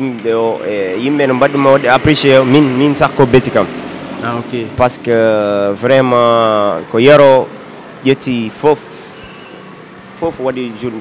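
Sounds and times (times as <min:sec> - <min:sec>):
man speaking into a microphone: 0:00.0 - 0:08.9, 0:10.2 - 0:11.0
steady background noise: 0:00.0 - 0:11.0.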